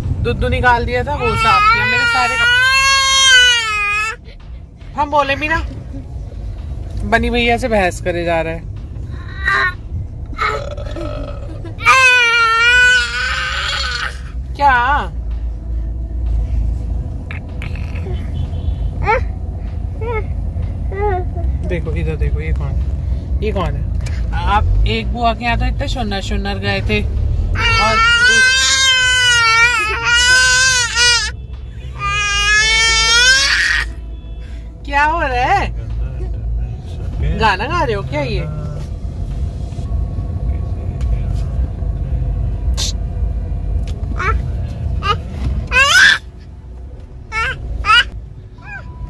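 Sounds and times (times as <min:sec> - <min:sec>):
car cabin rumble: 0:00.0 - 0:49.0
baby crying out: 0:10.4 - 0:14.3, 0:27.6 - 0:31.3, 0:32.0 - 0:34.0, 0:45.0 - 0:46.3, 0:47.3 - 0:49.0.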